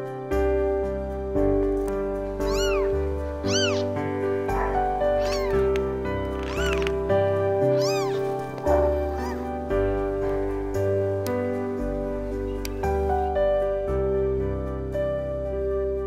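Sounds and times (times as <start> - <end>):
soft background music: 0.0 - 16.0
kittens mewing: 2.4 - 9.8.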